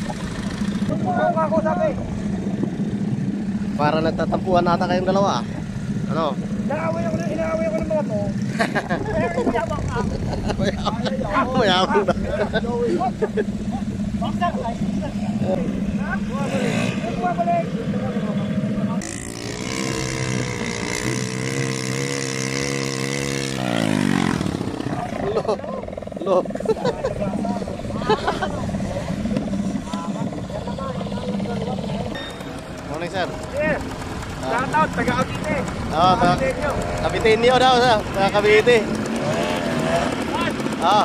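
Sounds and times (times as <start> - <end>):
quad bike engine idling: 0.0 - 41.0.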